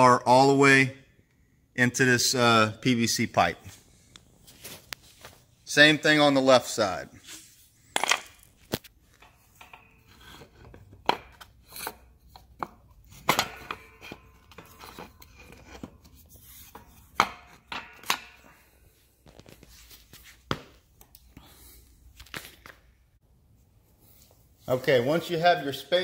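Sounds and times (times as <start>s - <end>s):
rubbing and handling noise: 3.4s - 21.0s, 21.7s - 26.0s.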